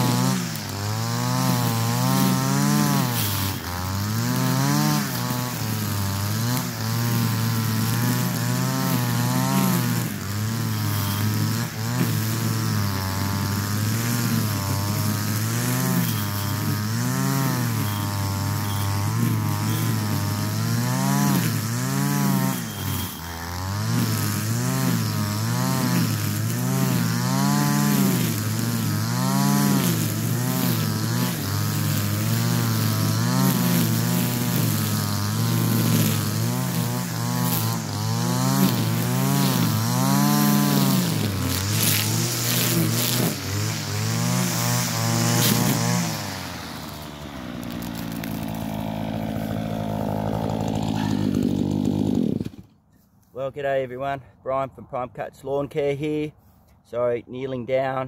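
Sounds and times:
string trimmer engine revving: 0.0s - 52.9s.

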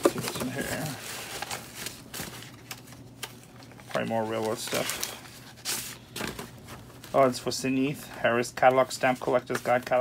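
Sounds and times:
plastic sleeve rustling: 0.0s - 8.0s.

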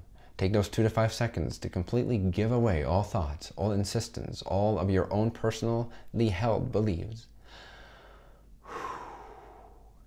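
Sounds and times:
man breathing: 7.4s - 10.0s.

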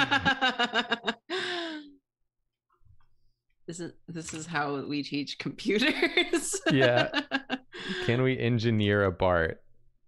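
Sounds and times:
person laughing hard: 0.0s - 1.9s, 6.5s - 8.0s.

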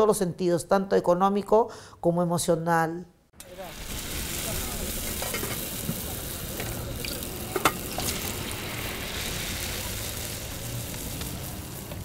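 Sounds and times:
food sizzling: 3.4s - 12.0s.

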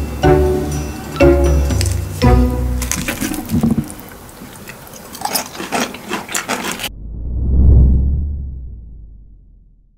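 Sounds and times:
salad leaves crackling in bowl: 2.8s - 5.7s
deep rumble: 6.9s - 9.9s.

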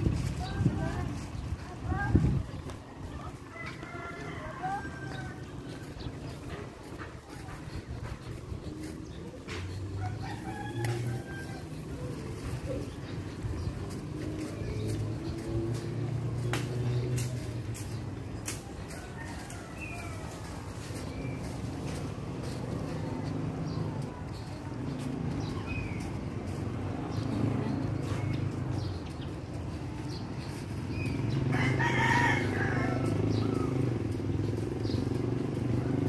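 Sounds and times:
birds chirping: 0.0s - 36.0s
roosters crowing: 2.9s - 7.0s, 8.0s - 36.0s.

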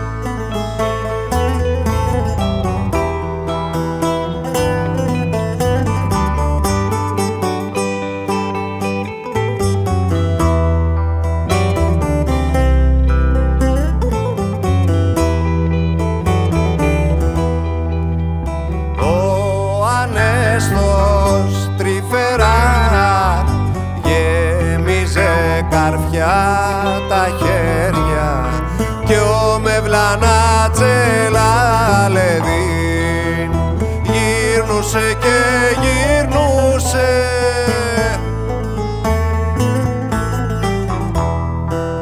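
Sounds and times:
bass line: 0.0s - 42.0s
plucked string instruments: 0.0s - 42.0s
sliding melodic line: 0.0s - 42.0s.

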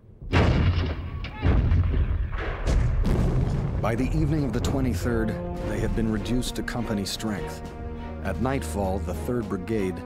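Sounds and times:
artillery gun blasts: 0.2s - 5.1s.

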